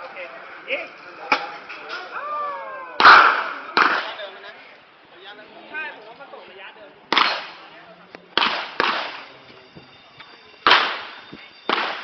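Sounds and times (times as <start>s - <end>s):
sharp bangs of airsoft launcher: 3.0s - 4.2s, 7.1s - 7.6s, 8.4s - 9.2s, 10.7s - 11.1s, 11.7s - 12.0s.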